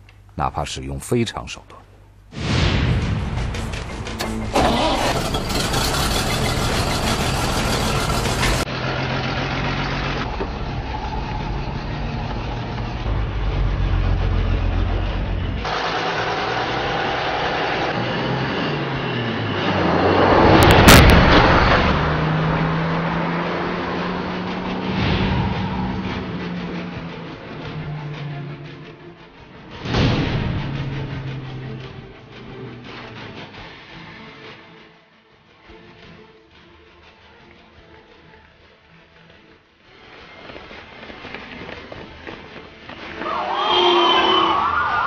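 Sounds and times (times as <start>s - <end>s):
loud crash: 2.3s - 8.7s, 19.6s - 22.6s, 24.8s - 26.4s, 29.7s - 31.9s
truck engine running: 3.1s - 33.6s.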